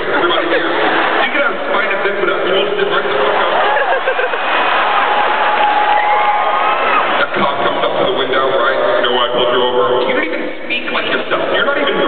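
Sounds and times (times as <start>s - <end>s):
audience noise in arena: 0.0s - 12.0s.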